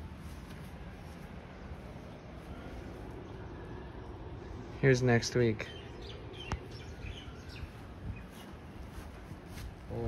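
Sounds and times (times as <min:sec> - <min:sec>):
steady low hum: 0:00.0 - 0:10.0
faint bird chirps: 0:05.6 - 0:08.8.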